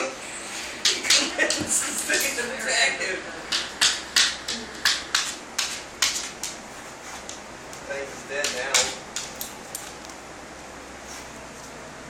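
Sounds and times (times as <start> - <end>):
dog claws tapping on hardwood floor: 3.5 - 6.6, 8.4 - 10.0.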